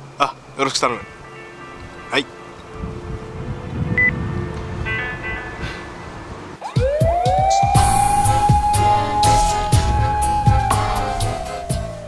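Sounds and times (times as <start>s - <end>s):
background music: 0.6s - 12.0s
police car sirens wailing: 6.6s - 12.0s.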